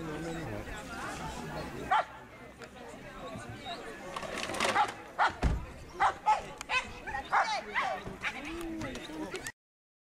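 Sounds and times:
people talking: 0:00.0 - 0:09.6
dog barking: 0:04.8 - 0:05.4, 0:06.0 - 0:08.4.

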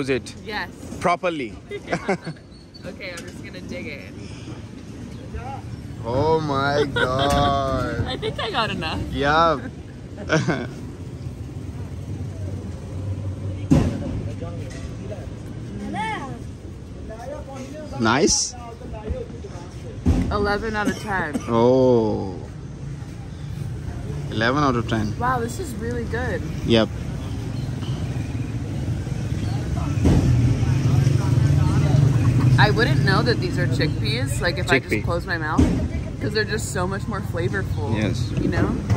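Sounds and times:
low street rumble: 0:00.0 - 0:38.9
vehicle engine humming: 0:00.0 - 0:38.9.

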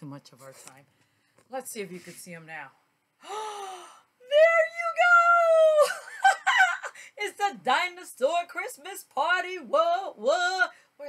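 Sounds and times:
woman's high-pitched excited cry: 0:04.3 - 0:07.0.

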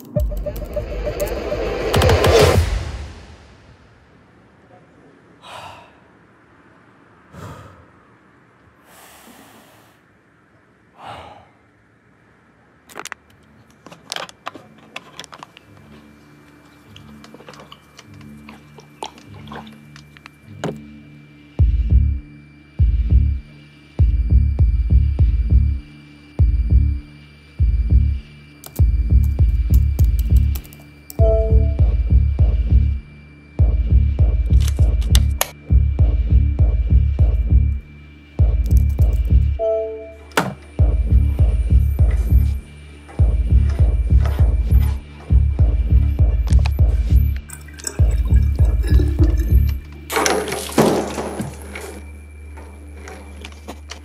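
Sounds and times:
man gasping breath: 0:05.4 - 0:06.2, 0:07.3 - 0:08.0, 0:11.0 - 0:11.7.

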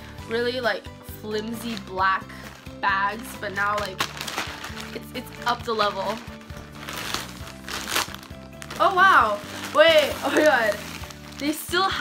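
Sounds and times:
soft background music: 0:00.0 - 0:12.0
plastic bag crinkling: 0:01.5 - 0:12.0.

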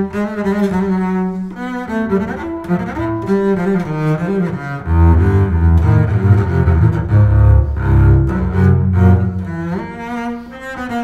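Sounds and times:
bowed double bass: 0:00.0 - 0:11.0.

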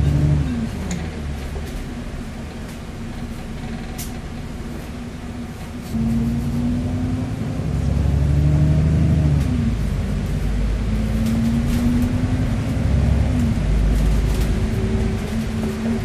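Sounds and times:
bus diesel engine: 0:00.0 - 0:16.0.

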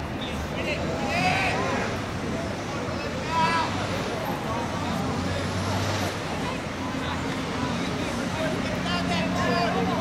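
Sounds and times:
heavy vehicle engine rumble: 0:00.0 - 0:10.0.

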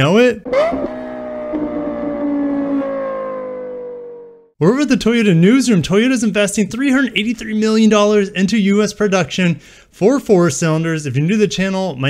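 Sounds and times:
engine revving: 0:00.4 - 0:04.6.

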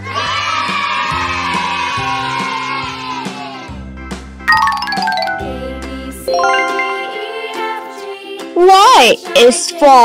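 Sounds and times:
light background music: 0:04.4 - 0:10.0
tinkling chime sound effect: 0:04.5 - 0:08.1.

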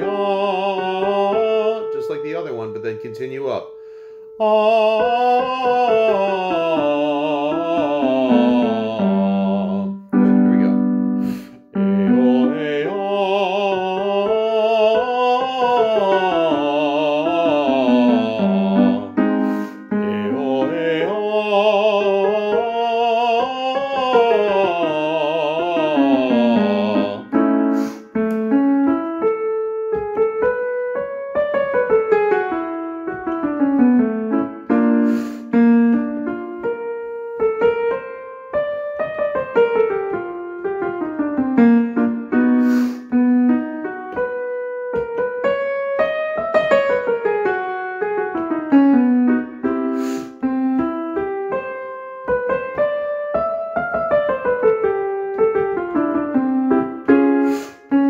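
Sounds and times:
piano playing scale runs: 0:00.0 - 0:58.0.

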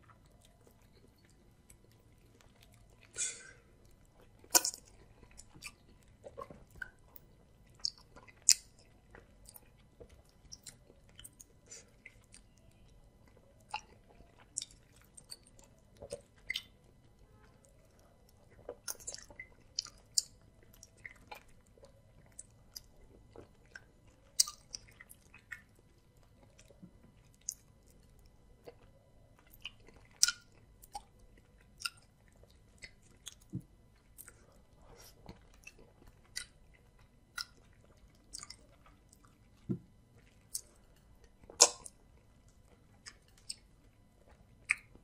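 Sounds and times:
wet chewing mouth sounds: 0:00.0 - 0:45.0.

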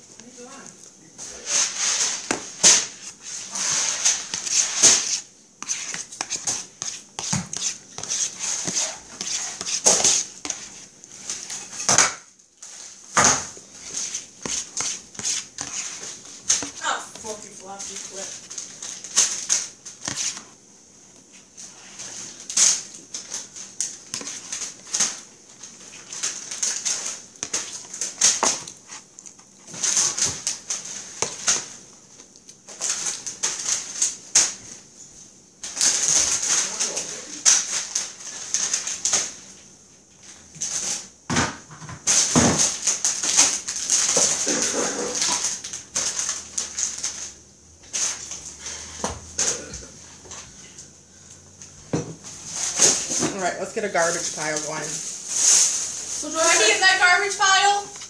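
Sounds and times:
plastic bags rustling: 0:00.0 - 0:41.2, 0:42.0 - 0:58.0.

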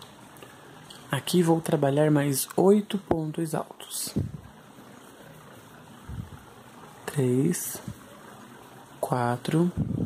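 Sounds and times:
low machine hum: 0:00.0 - 0:10.0
soft hiss: 0:00.0 - 0:10.0.

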